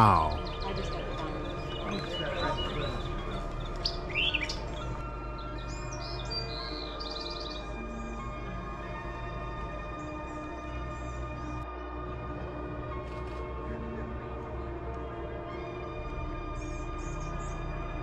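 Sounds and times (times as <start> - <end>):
birds chirping: 0.0 - 7.9
sustained ambient music: 0.0 - 18.0.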